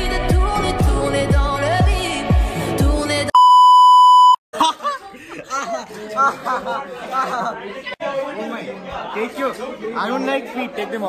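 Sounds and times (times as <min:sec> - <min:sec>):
pop music with bass drum: 0:00.0 - 0:03.4
electronic bleep tone: 0:03.3 - 0:04.4.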